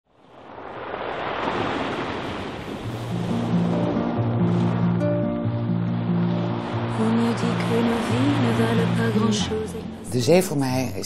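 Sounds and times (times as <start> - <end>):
waves breaking on pebble beach: 0.1 - 9.7
music with sustained low notes: 3.1 - 10.3.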